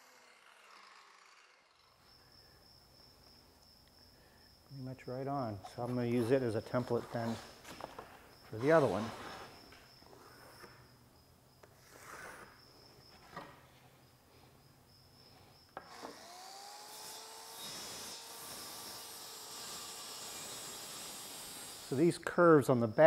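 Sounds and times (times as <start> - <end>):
plywood rubbing and scraping: 5.6 - 10.8
motor whining with airy hiss: 15.8 - 22.0.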